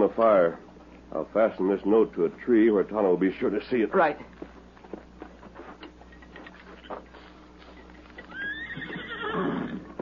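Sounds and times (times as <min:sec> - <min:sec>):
horse whinnying: 0:08.2 - 0:10.0.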